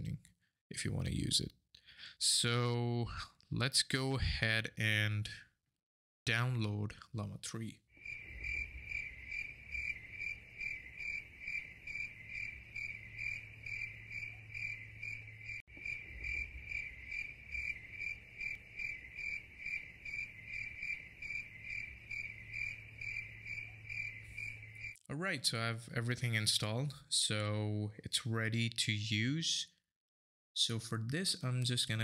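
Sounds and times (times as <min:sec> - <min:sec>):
cricket chirping: 0:08.0 - 0:25.0.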